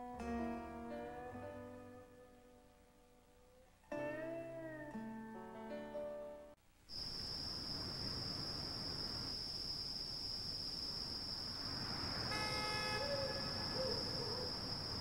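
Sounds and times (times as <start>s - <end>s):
horn-like toot: 12.3s - 14.0s.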